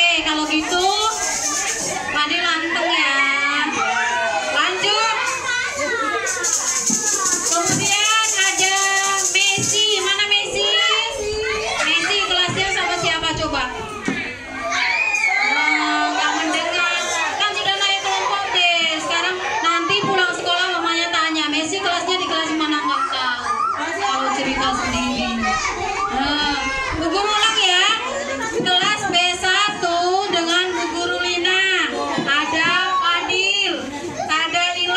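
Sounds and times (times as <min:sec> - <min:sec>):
children chattering and singing: 0:00.0 - 0:34.9
shaker rattling hiss: 0:00.2 - 0:02.2, 0:04.8 - 0:11.3.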